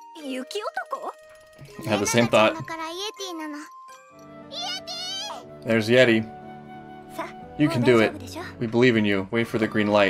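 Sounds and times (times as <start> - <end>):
tinkling background music: 0.0 - 10.0
child calling out: 4.5 - 5.4.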